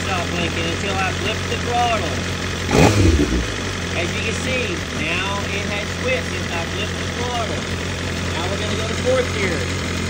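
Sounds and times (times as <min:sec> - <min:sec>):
motorcycle engine idling: 0:00.0 - 0:10.0
engine throttle blip: 0:02.6 - 0:03.7.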